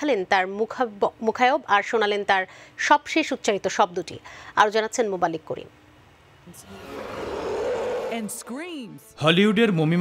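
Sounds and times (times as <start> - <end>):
monster roar: 6.6 - 8.5.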